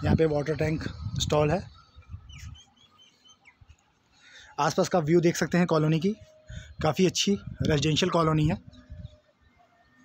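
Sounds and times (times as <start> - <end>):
faint bird chirping: 0.6 - 10.0.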